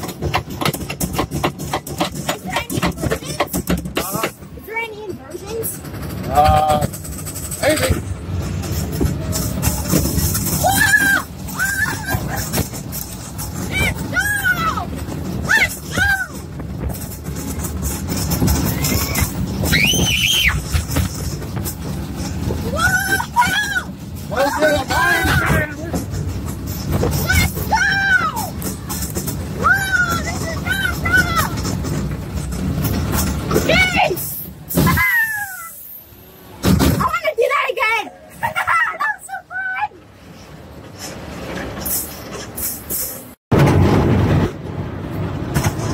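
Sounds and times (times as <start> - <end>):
wind rush and ride rumble: 0.0 - 35.2, 43.5 - 45.9
riders screaming and whooping: 9.4 - 12.9, 13.6 - 16.5, 18.5 - 21.0, 22.6 - 25.7, 27.1 - 28.6, 29.5 - 31.7, 33.7 - 36.0.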